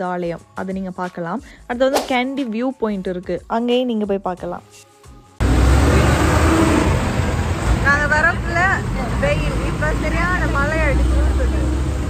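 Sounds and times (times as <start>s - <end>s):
road traffic noise: 5.4s - 12.0s.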